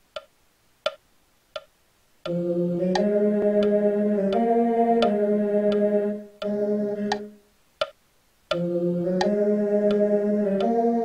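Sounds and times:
metronome clicks: 0.1 - 5.8, 6.4 - 10.8.

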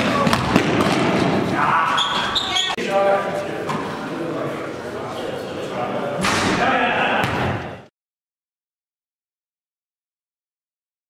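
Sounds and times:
voices echoing in gym: 0.0 - 7.9.

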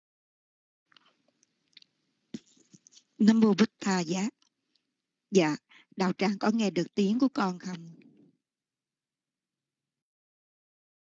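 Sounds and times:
soft clicks and mouth noises: 0.9 - 3.2, 4.3 - 4.9
faint microphone hiss: 0.9 - 8.4.

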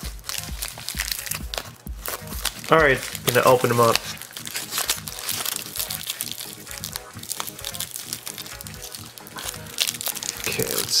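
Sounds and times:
background music: 0.0 - 11.0
wrapper crinkling: 0.0 - 11.0.

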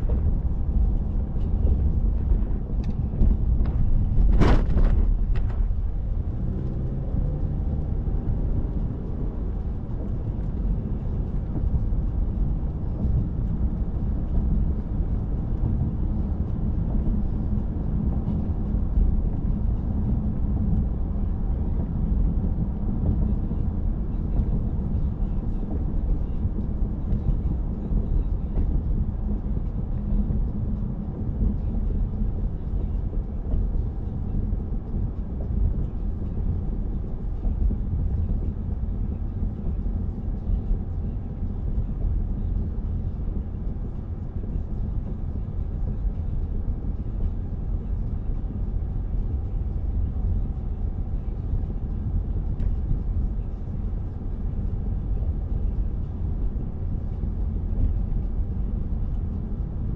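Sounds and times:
car driving rumble: 0.0 - 59.9.

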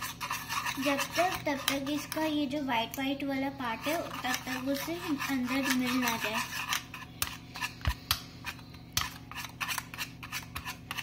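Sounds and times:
whisk beating batter in bowl: 0.0 - 11.0.

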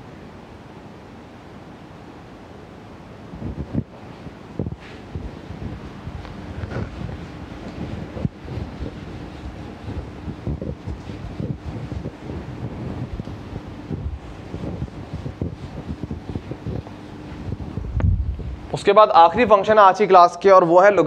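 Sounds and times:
faint steady hum: 0.0 - 21.0
duster rubbing on whiteboard: 6.2 - 18.0.

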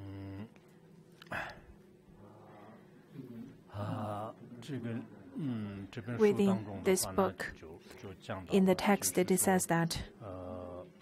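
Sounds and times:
man humming: 0.0 - 4.4, 5.3 - 5.9.

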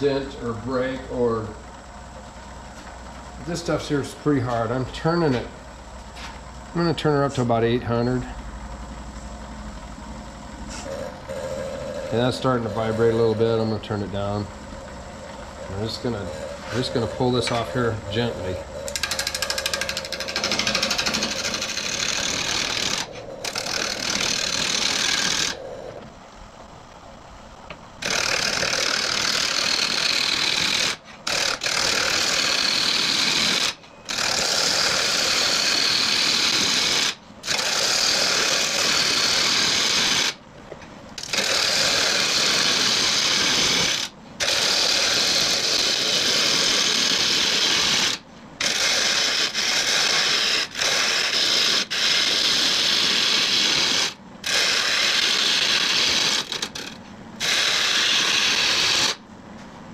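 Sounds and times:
lathe tool scraping wood: 15.3 - 26.0, 28.0 - 40.4, 41.2 - 59.2.

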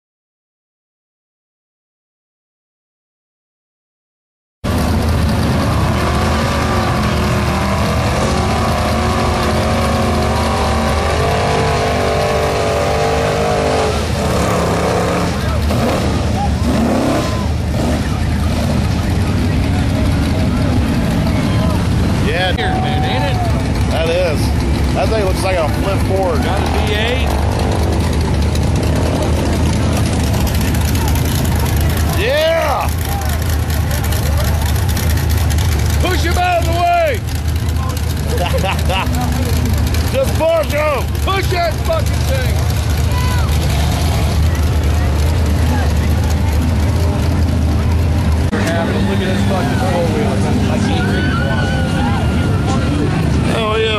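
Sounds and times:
truck engines revving: 4.6 - 53.9
people shouting and talking: 4.7 - 53.9.

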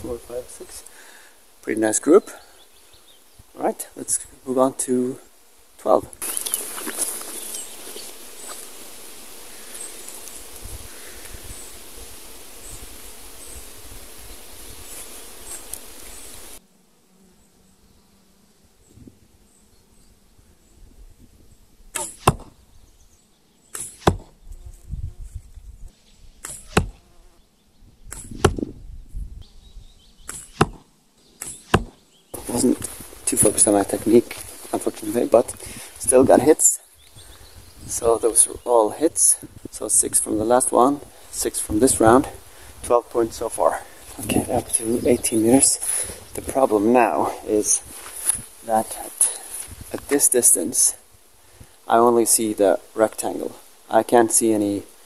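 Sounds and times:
steady hiss: 0.0 - 16.8, 17.4 - 27.2, 30.2 - 55.0
arrows snapping into target: 21.9 - 22.6, 23.7 - 24.4, 26.4 - 27.0, 28.1 - 28.7, 30.2 - 32.0.

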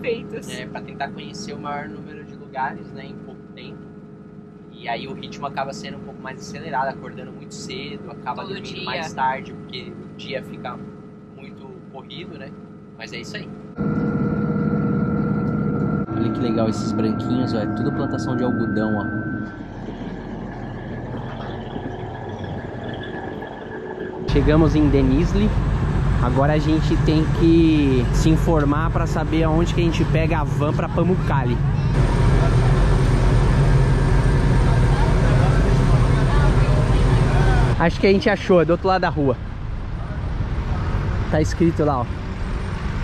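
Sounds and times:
voices talking: 0.0 - 3.8, 4.8 - 10.8, 11.4 - 14.1, 16.1 - 19.2, 24.3 - 25.6, 26.2 - 33.1, 34.4 - 39.4
diesel train engine humming: 0.0 - 43.0
train rumble inside carriage: 19.5 - 38.2.

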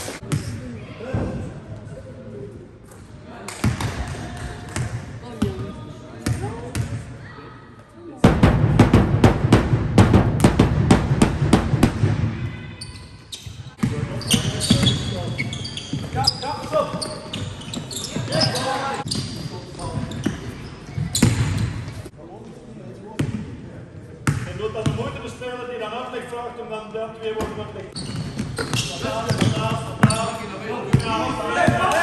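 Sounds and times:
loud impact: 8.2 - 12.4
players' voices: 12.1 - 32.0.

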